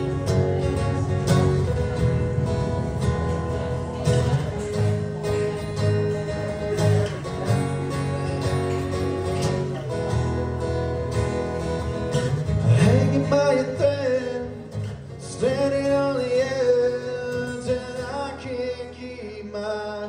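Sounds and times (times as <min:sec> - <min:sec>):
acoustic guitar strummed: 0:00.0 - 0:20.0
man singing: 0:12.5 - 0:20.0.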